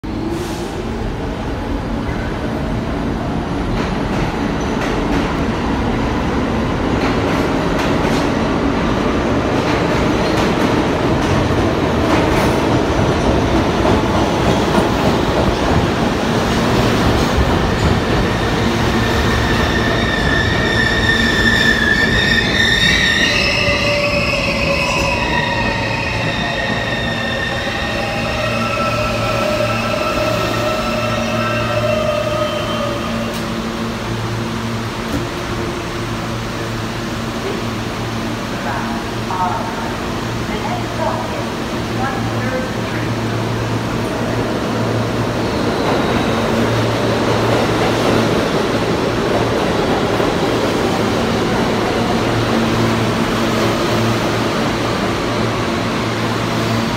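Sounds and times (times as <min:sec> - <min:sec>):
high whining train tones: 0:11.3 - 0:34.9.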